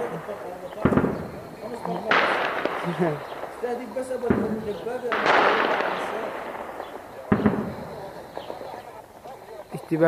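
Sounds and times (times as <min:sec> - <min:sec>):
gunfire bangs: 0:00.0 - 0:09.8
faint voices: 0:00.0 - 0:10.0.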